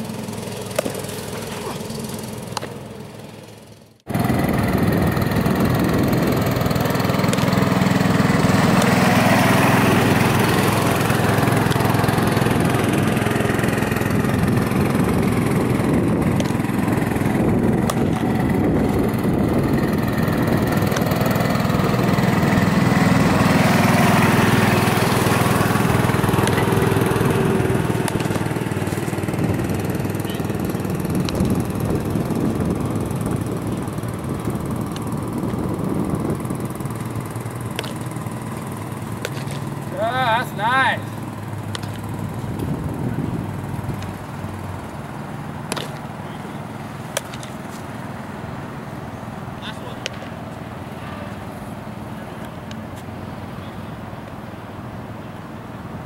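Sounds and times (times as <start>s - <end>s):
field ambience: 0.0s - 56.0s
lawn mower engine running: 0.0s - 56.0s
baseball popping into mitt: 0.6s - 1.7s, 17.8s - 18.3s, 28.0s - 28.6s, 37.7s - 38.0s, 39.2s - 39.7s, 45.7s - 46.1s, 47.1s - 47.8s, 50.0s - 50.4s.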